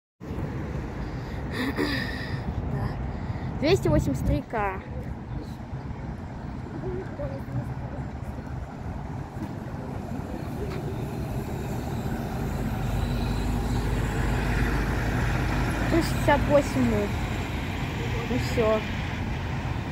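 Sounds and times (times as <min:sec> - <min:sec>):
bus engine rumble: 0:00.2 - 0:19.9
road traffic noise: 0:00.2 - 0:19.9.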